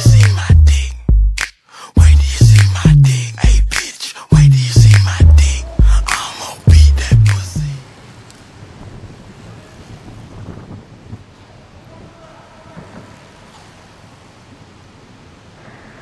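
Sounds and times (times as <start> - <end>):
hall rumble: 2.0 - 7.8.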